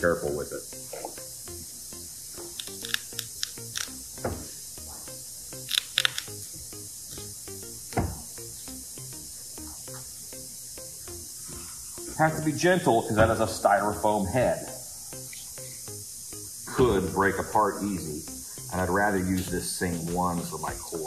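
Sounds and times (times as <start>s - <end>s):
quiet background music: 0.0s - 21.0s.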